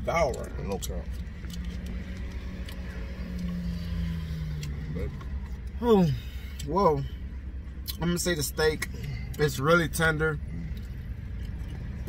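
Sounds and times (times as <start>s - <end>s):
car engine idling: 0.0s - 12.0s
low steady hum: 0.0s - 12.0s.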